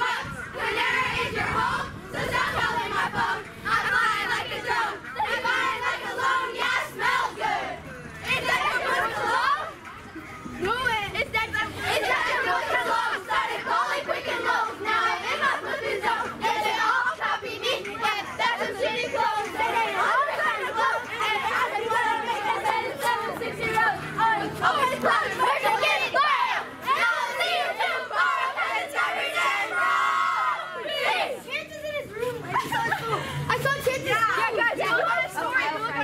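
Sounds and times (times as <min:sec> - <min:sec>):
children chattering excitedly: 0:00.0 - 0:36.0.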